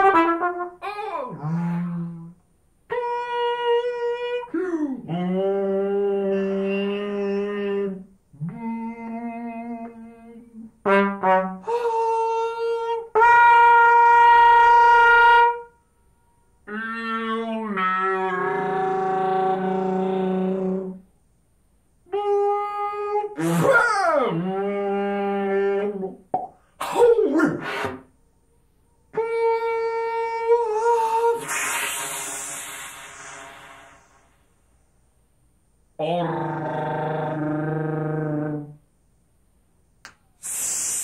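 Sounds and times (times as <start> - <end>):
trumpet holding notes: 0.0 - 0.8, 10.8 - 11.7.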